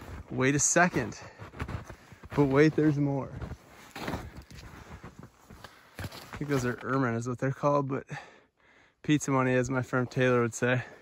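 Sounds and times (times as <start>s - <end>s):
footsteps in snow: 0.0s - 7.0s.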